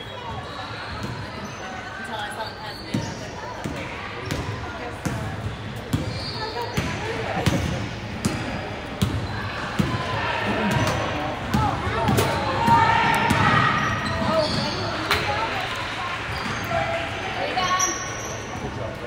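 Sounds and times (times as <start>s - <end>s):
voices calling out: 0.0s - 19.0s.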